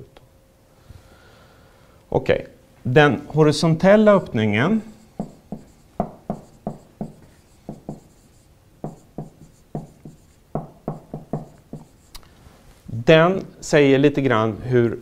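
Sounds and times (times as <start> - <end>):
marker writing on whiteboard: 5.0 - 12.2.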